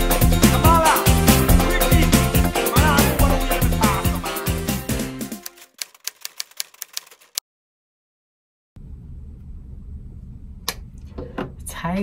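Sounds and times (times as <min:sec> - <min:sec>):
background music: 0:00.0 - 0:05.6
typewriter key clicks: 0:05.4 - 0:07.4.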